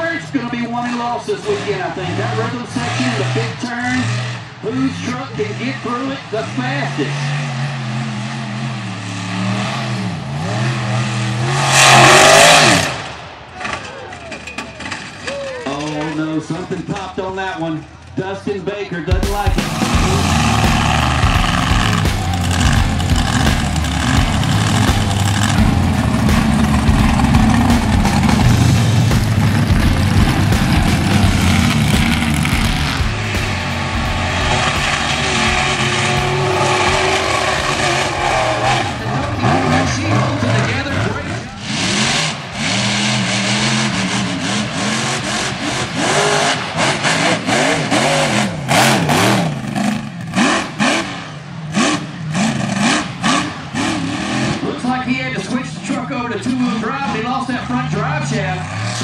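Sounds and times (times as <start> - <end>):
truck engines revving: 0.0 - 59.0.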